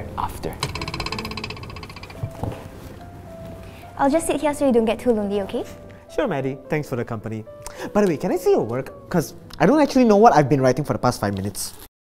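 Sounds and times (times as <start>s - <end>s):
pulsed croaking buzz: 0.0s - 2.7s.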